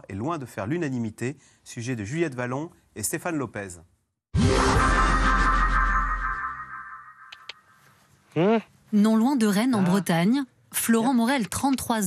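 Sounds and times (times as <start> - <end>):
electronic music sting with bass: 4.4 - 7.3.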